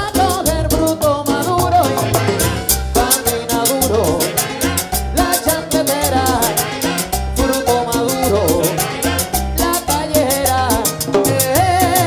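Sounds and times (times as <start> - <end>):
accordion: 0.0 - 12.0
bass line: 0.0 - 12.0
steady percussion beat: 0.0 - 12.0.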